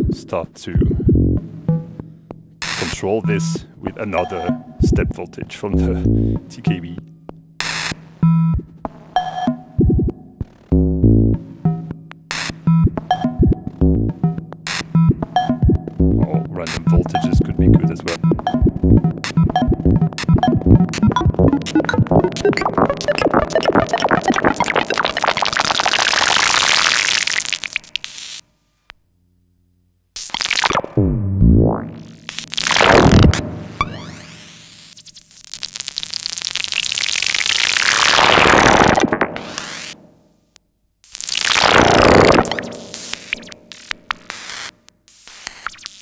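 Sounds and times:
plucked synthesizer tones: 0:00.8 - 0:02.2, 0:02.8 - 0:07.0, 0:08.2 - 0:27.9, 0:30.7 - 0:34.4
steady low synth tone: 0:05.7 - 0:06.5, 0:09.8 - 0:11.9, 0:12.7 - 0:14.4, 0:15.0 - 0:25.0.

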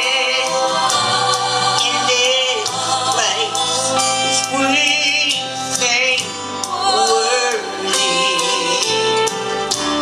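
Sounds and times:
man singing gospel: 0:00.0 - 0:09.3
instrumental accompaniment: 0:00.0 - 0:10.0.

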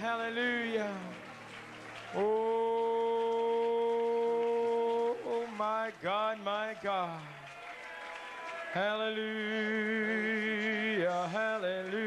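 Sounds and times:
man singing a long note: 0:02.2 - 0:07.2, 0:08.7 - 0:12.0.

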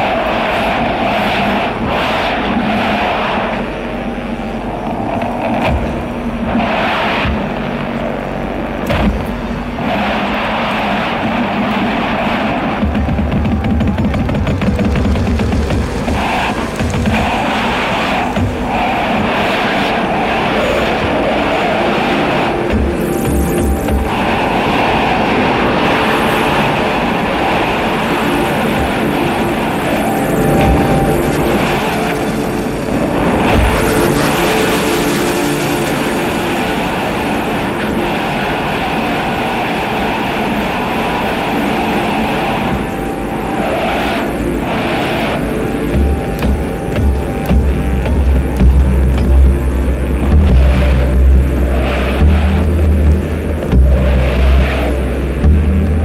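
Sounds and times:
noisy electronic drone: 0:00.0 - 0:56.0
heavy bass notes: 0:44.2 - 0:56.0.

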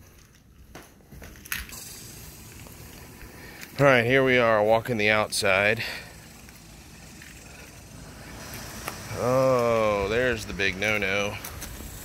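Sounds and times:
outdoor background hiss: 0:00.0 - 0:12.0.

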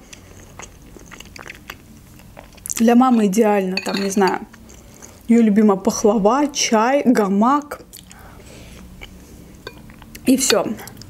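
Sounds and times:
person chewing food: 0:00.0 - 0:02.8, 0:07.9 - 0:11.0.

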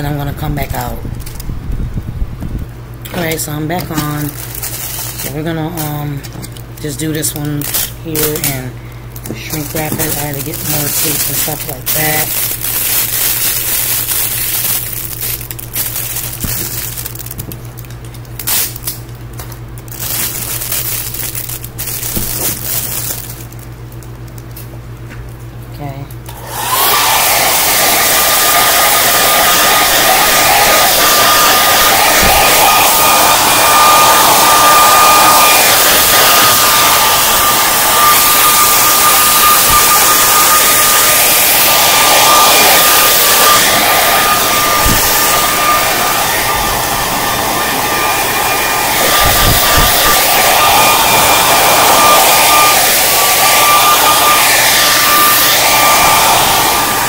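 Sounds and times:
hot-air blower whining: 0:00.0 - 0:25.1, 0:25.8 - 0:57.0.

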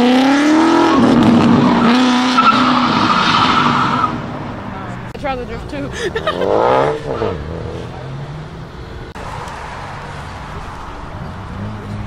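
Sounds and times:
car engine revving: 0:00.0 - 0:12.0.

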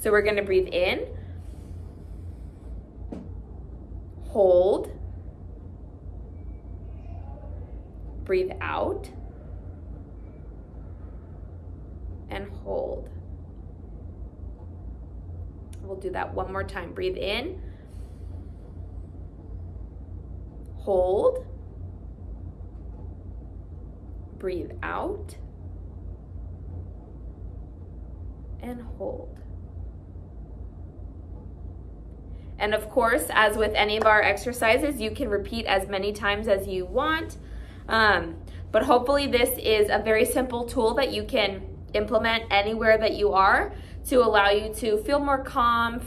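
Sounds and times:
low room hum: 0:00.0 - 0:46.0
faint breath inhale: 0:01.2 - 0:02.9, 0:17.6 - 0:18.7.

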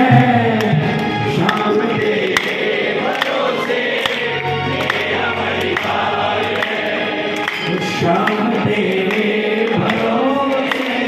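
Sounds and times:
sharp percussion hits: 0:00.0 - 0:02.3
electronic keyboard low notes: 0:00.0 - 0:02.8
group of voices singing: 0:00.0 - 0:11.0.

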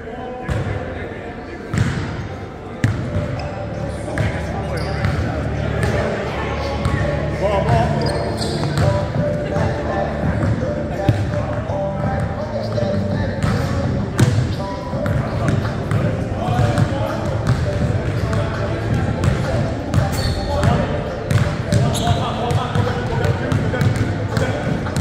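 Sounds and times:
indistinct voices in echoing hall: 0:00.0 - 0:25.0.

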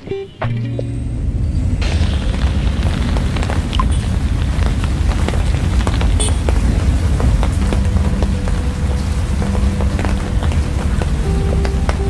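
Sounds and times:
low road rumble: 0:00.0 - 0:12.0
raindrops tapping on car: 0:01.8 - 0:12.0
music with long held notes: 0:06.6 - 0:12.0.

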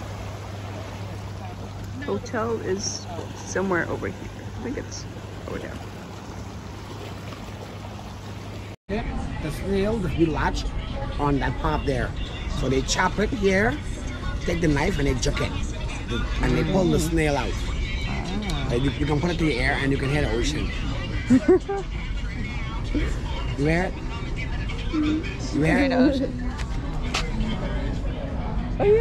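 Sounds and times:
sea rushing on rocky shore: 0:00.0 - 0:08.7
street traffic rumble: 0:00.0 - 0:29.0
wind: 0:00.0 - 0:29.0.

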